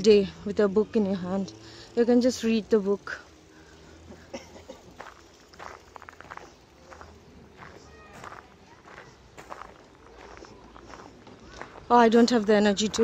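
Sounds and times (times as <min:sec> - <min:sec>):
footsteps on gravel: 0:04.8 - 0:13.0.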